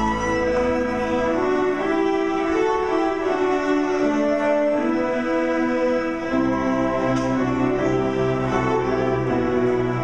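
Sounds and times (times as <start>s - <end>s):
string orchestra playing: 0.0s - 10.0s.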